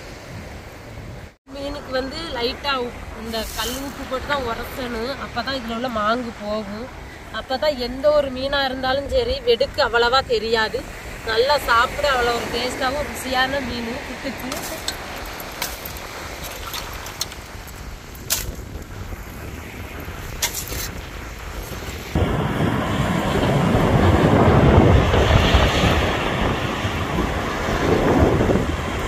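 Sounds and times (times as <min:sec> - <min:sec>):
sea waves breaking on shore: 0:00.0 - 0:08.5, 0:10.1 - 0:29.0
wind on microphone: 0:06.4 - 0:29.0.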